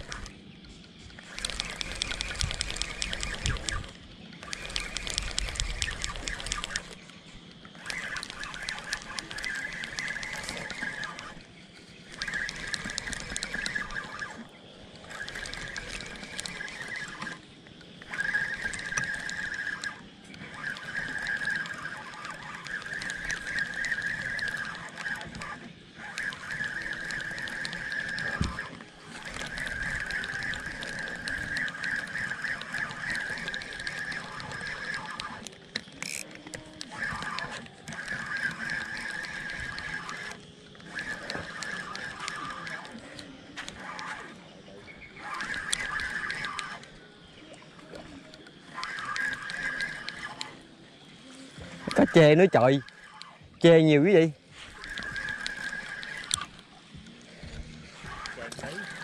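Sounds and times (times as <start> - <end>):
fishing reel clicking whirr: 0.0 - 59.0.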